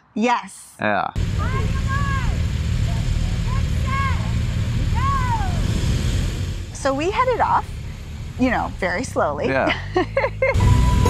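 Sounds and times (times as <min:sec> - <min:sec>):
motorcycles idling: 0:01.2 - 0:11.0
person calling out: 0:09.5 - 0:09.8.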